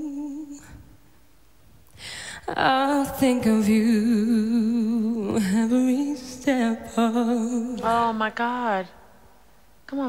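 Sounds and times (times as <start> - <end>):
woman singing unaccompanied: 0.0 - 0.7, 2.5 - 9.0.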